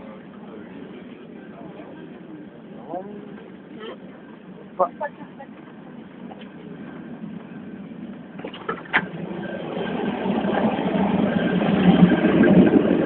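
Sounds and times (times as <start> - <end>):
train running noise from inside: 0.0 - 13.0.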